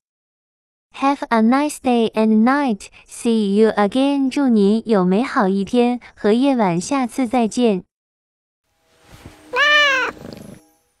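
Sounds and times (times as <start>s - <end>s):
cat meowing: 9.5s - 10.3s.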